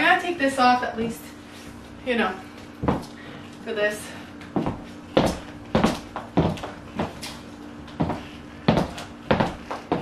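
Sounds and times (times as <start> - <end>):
high heels on wooden floor: 2.8 - 3.1, 4.6 - 10.0.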